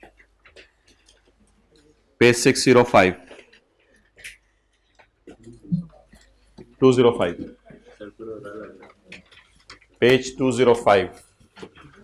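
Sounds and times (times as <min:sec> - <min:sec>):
quiet speech: 0:05.3 - 0:09.3.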